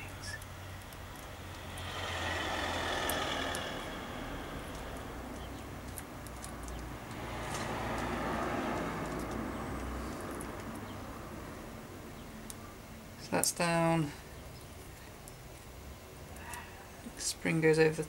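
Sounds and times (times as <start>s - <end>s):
low steady hum: 0.0s - 7.4s
passing road vehicle: 0.6s - 12.3s.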